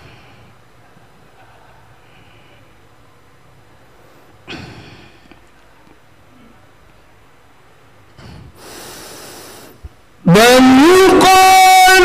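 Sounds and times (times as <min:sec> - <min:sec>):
person breathing in near microphone: 0:08.2 - 0:09.8.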